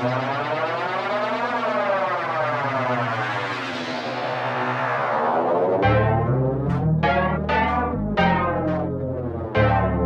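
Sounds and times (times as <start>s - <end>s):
sustained synthesizer chord: 5.8s - 10.0s.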